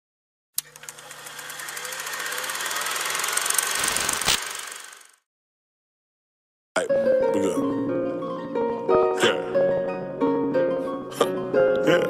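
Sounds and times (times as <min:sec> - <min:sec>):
ticking engine-like noise: 0:00.6 - 0:05.2.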